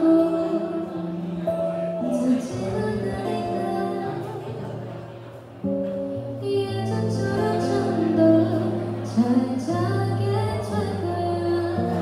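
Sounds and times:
woman singing into microphone: 0.0s - 5.1s, 6.4s - 12.0s
acoustic guitar: 0.0s - 12.0s.

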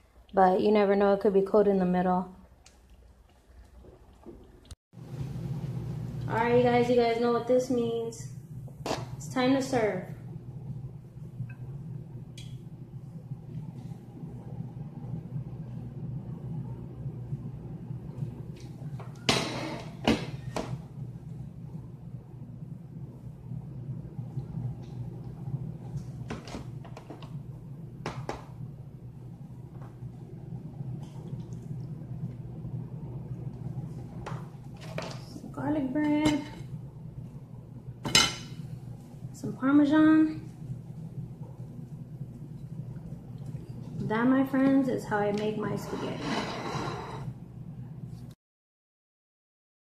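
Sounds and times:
low rumbling hum: 0.0s - 48.4s.

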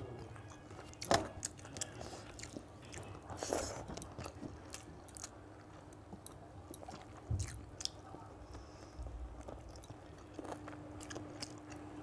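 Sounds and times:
chewing and wet mouth sounds: 0.1s - 12.0s.

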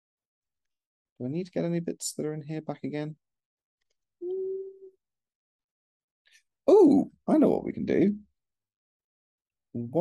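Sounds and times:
person humming: 4.2s - 5.0s.

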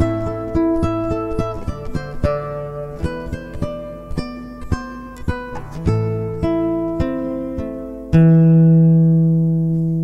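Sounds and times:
fingerpicked nylon-string guitar: 0.0s - 10.0s.

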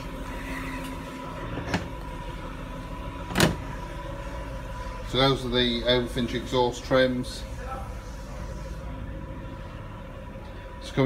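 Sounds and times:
workshop hum: 0.0s - 11.0s.

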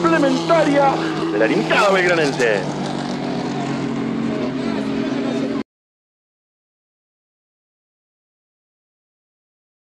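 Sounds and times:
race car engine running: 0.0s - 5.6s
voices: 0.0s - 5.6s.

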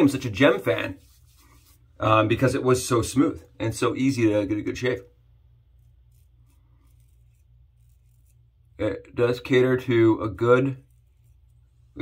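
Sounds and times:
razor blade scraping stubble: 5.8s - 8.6s.

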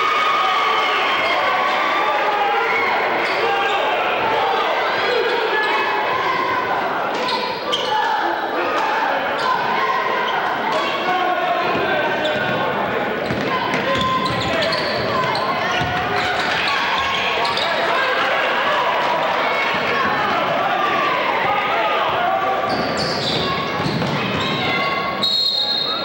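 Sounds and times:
crowd voices talking: 0.0s - 26.0s.

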